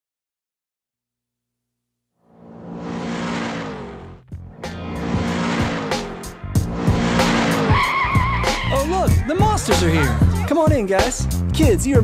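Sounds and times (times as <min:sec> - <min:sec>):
cartoon engine revving: 0:02.3 - 0:08.9
tyres skidding: 0:02.4 - 0:10.4.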